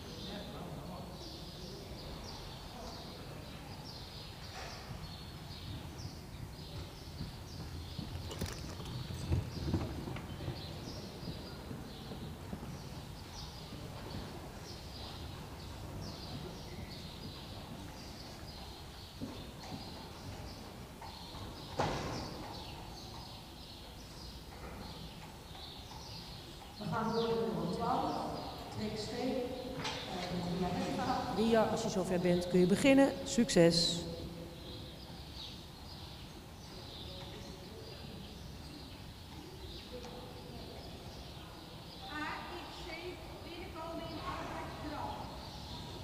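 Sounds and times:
horse hoofbeats on sand: 4.7s - 27.4s
carriage rolling rumble: 6.6s - 14.4s.

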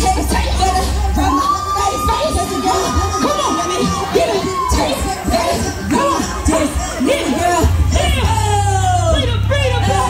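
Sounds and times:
audience cheering and yelling: 0.0s - 10.0s.

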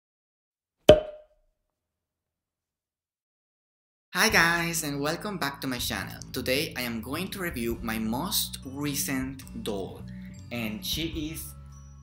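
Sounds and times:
sharp percussive knock with ringing: 0.9s - 1.2s.

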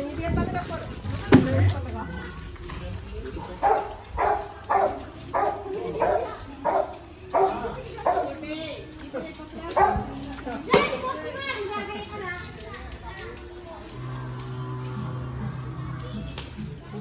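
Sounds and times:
voices: 0.0s - 17.0s
dog barking: 3.5s - 8.4s, 9.8s - 10.1s.

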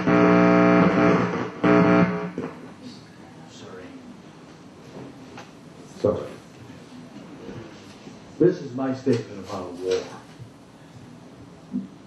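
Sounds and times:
guitar chords strummed: 0.0s - 2.4s.

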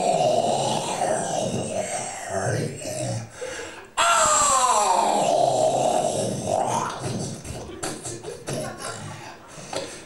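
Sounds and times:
rough grunt-like voice: 0.0s - 3.4s, 4.0s - 9.4s.

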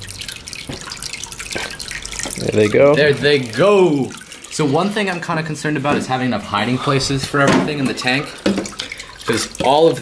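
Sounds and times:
sharp water drips: 0.0s - 10.0s
water trickling into aquarium: 0.0s - 10.0s.

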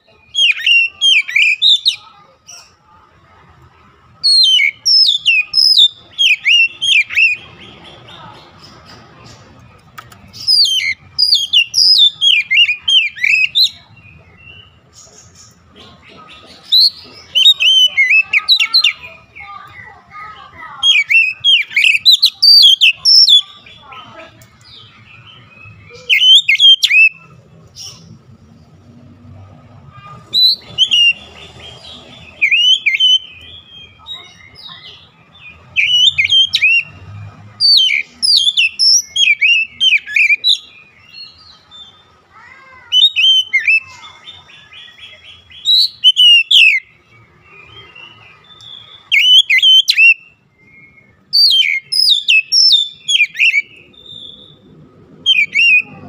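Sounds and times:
bird whistles and chirps: 0.3s - 2.1s, 4.2s - 7.4s, 10.3s - 13.8s, 20.8s - 23.5s, 25.2s - 27.3s, 30.3s - 31.5s, 32.3s - 35.0s, 35.8s - 37.0s, 37.6s - 42.0s, 42.9s - 47.0s, 47.6s - 56.0s
bird chattering: 4.2s - 28.2s, 29.9s - 37.0s.

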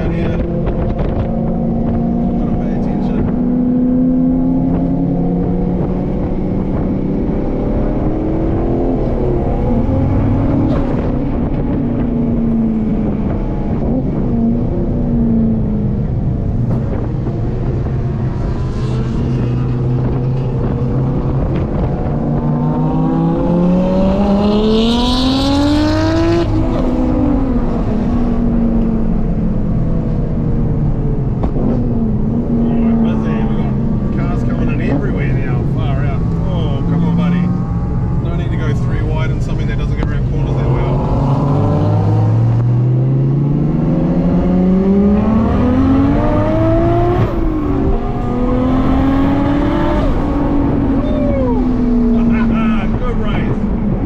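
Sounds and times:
car engine revving from inside cabin: 35.6s - 52.6s.

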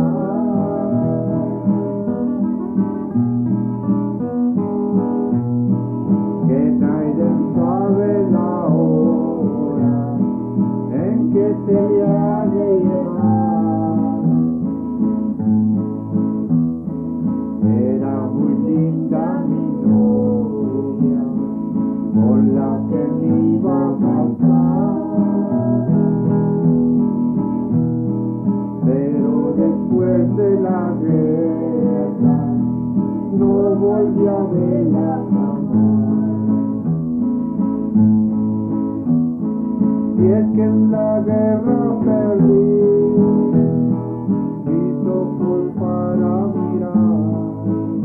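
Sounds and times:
man and woman singing: 0.0s - 2.4s, 6.4s - 14.3s, 17.6s - 21.4s, 22.1s - 26.6s, 28.8s - 36.8s, 40.2s - 43.7s, 44.6s - 47.5s
acoustic guitar strumming: 0.0s - 48.0s.

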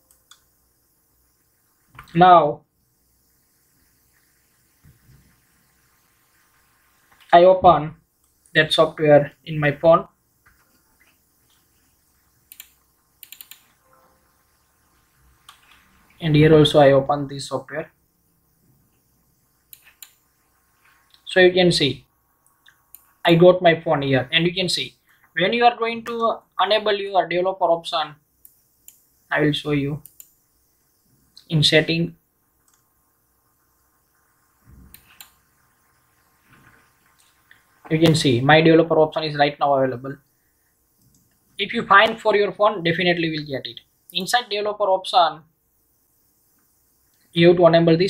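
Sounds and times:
computer mouse clicks: 0.0s - 0.6s, 8.2s - 8.5s, 12.4s - 13.8s, 15.4s - 15.9s, 19.0s - 20.4s, 22.4s - 23.2s, 28.4s - 29.2s, 30.0s - 31.5s, 32.6s - 32.9s, 34.7s - 35.6s.

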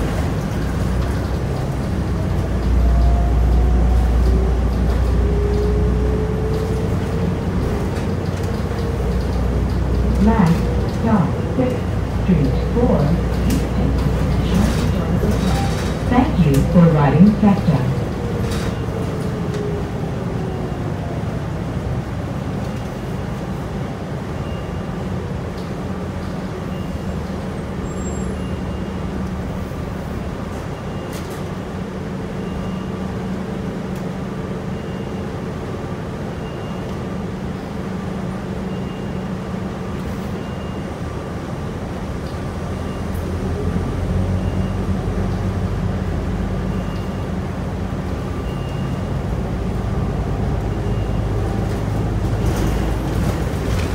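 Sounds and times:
bus drivetrain hum and road noise: 0.0s - 53.9s.

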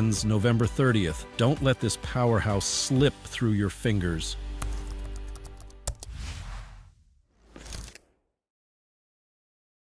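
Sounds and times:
whoosh sound effects: 6.0s - 8.0s.

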